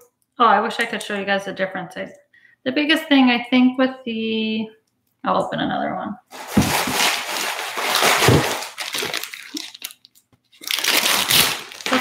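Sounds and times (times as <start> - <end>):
crinkly plastic packaging tearing: 6.3 - 12.0.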